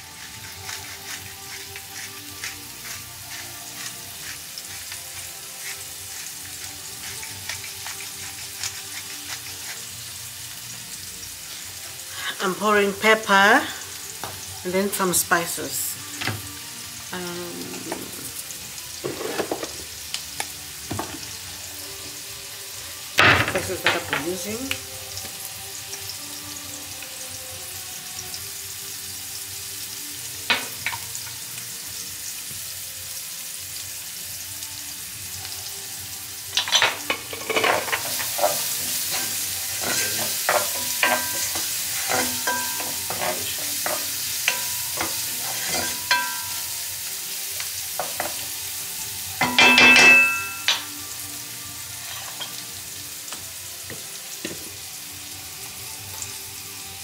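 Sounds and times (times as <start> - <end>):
spoon scraping a pan: 0.0 - 10.2, 17.7 - 20.0, 36.5 - 48.6, 51.8 - 52.7
vegetables sizzling in a pan: 0.0 - 57.0
utensils knocking on a pan: 19.0 - 19.8, 20.9 - 21.4, 23.2 - 24.4, 30.5 - 31.0, 36.6 - 46.7, 48.0 - 48.4, 49.4 - 51.0.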